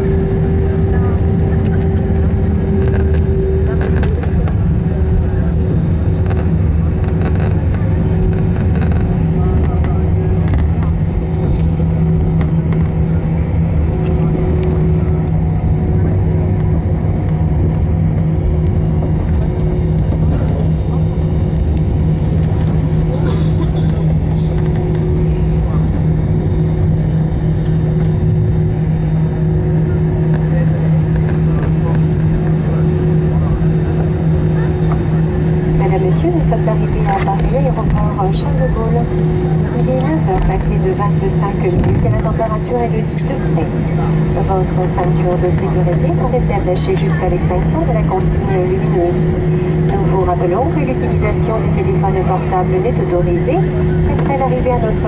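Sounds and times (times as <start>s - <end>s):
airplane cabin engine drone: 0.0s - 55.0s.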